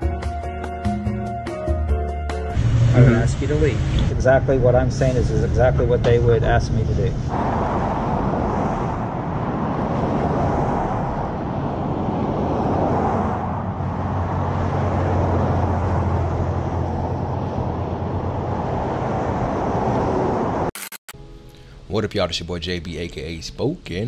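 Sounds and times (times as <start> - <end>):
low engine hum: 2.5 - 20.7
roar of passing vehicles: 2.5 - 20.7.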